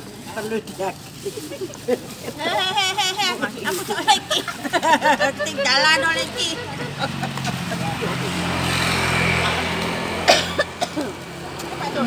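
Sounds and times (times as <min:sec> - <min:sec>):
vehicle passing: 0:02.5 - 0:12.0.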